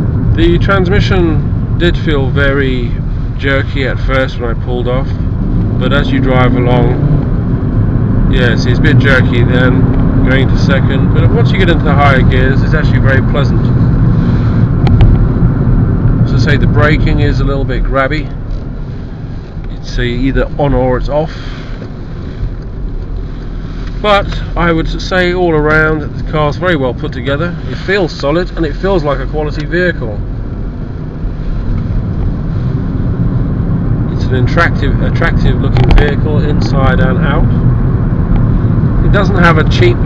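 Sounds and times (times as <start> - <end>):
road and tyre noise in car: 0.0 - 40.0.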